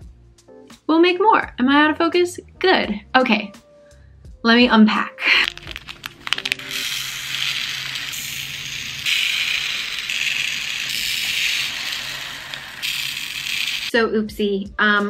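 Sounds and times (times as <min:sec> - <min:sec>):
plastic bags crinkling: 0:05.3 - 0:07.9
glass beads pouring and rattling: 0:05.4 - 0:14.0.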